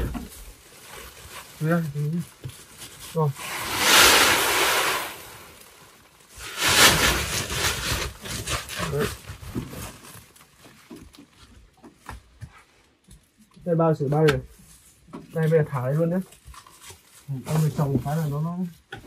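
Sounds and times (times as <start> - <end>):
plastic sacks rustling: 0.0 - 11.7
rice grain pouring into sack: 3.1 - 9.1.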